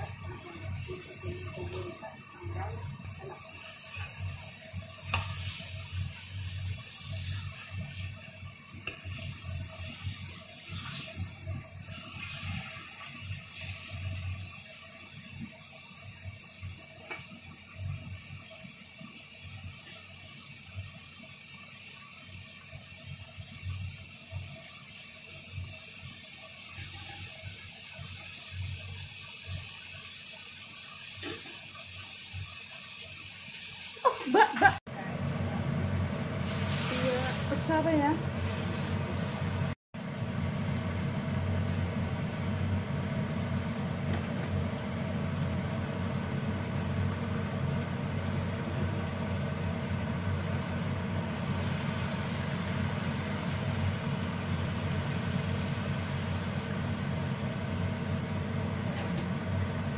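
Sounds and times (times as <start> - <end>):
meat sizzling in a wok: 0.0 - 59.9.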